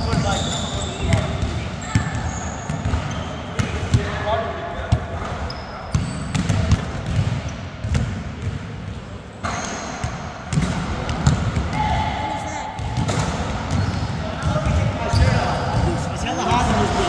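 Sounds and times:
basketballs bouncing on hardwood floor: 0:00.0 - 0:04.1, 0:04.9 - 0:09.0, 0:10.0 - 0:12.0, 0:12.8 - 0:16.0.

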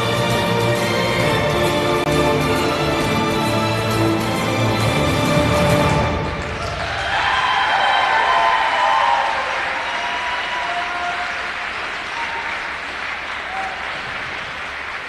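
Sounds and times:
audience applauding: 0:00.0 - 0:15.0.

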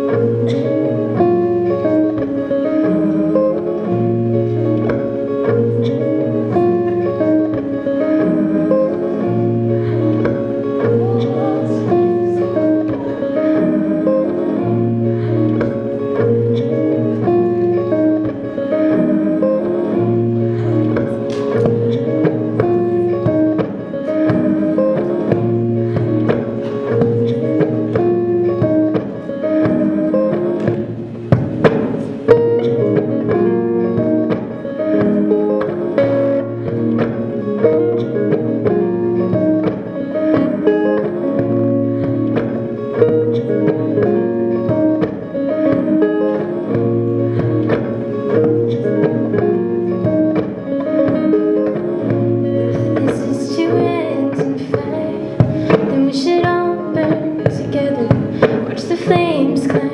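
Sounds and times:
woman singing: 0:00.0 - 0:31.3, 0:32.3 - 0:59.9
looped electric guitar chords: 0:00.0 - 0:59.9.

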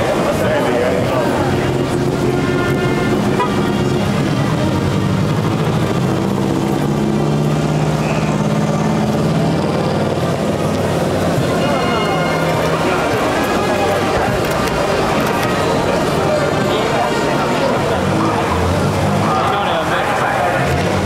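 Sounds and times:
vehicle engine idling: 0:00.0 - 0:21.0.

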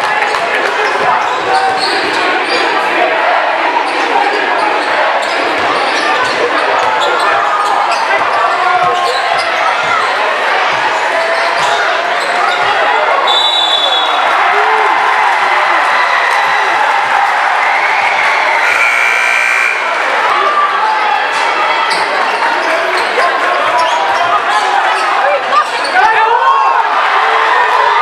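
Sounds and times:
crowd chatter: 0:00.0 - 0:28.0
referee whistle blast: 0:13.3 - 0:14.2, 0:18.1 - 0:20.0.

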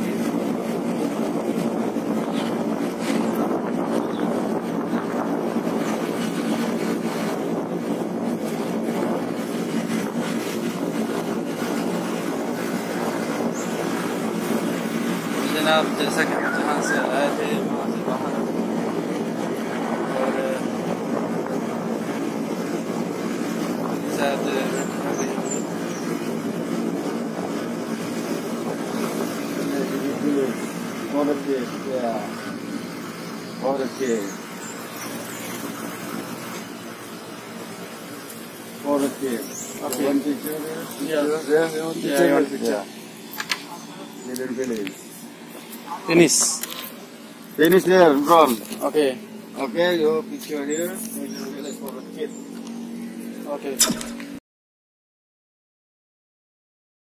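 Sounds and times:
outdoor background noise: 0:00.0 - 0:54.4
faint voices: 0:15.3 - 0:21.9, 0:38.0 - 0:53.9.

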